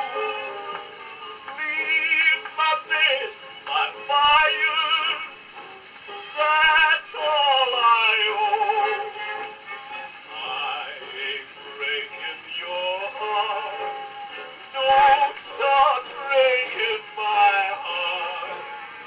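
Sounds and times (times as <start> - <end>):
gramophone record of man singing: 0.0 - 19.0.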